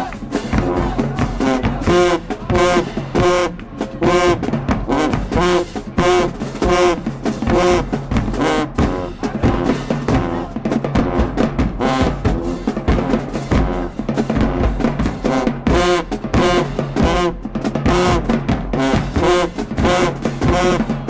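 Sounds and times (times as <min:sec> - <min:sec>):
bass drums: 0:00.0 - 0:21.0
brass horns: 0:00.0 - 0:21.0
cymbals: 0:00.0 - 0:21.0
marching band playing: 0:00.0 - 0:21.0
woodwinds: 0:00.0 - 0:21.0.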